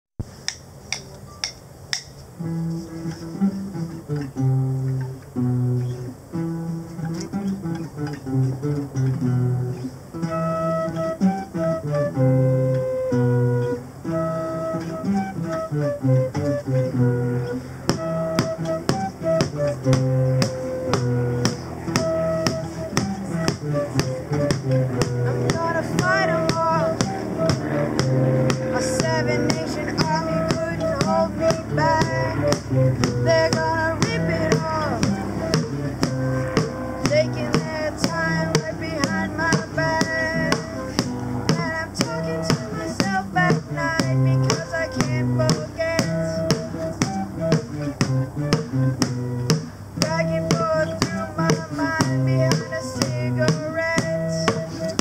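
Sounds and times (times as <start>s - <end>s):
classical guitars strumming: 1.4s - 55.0s
flute melody: 2.3s - 55.0s.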